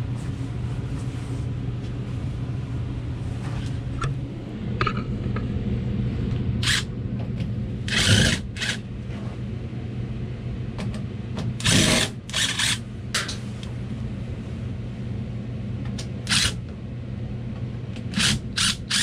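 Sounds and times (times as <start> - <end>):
blower humming: 0.0 - 19.0
cordless screwdriver running: 6.6 - 6.8, 7.9 - 8.8, 11.6 - 12.8, 16.3 - 16.6, 18.1 - 19.0.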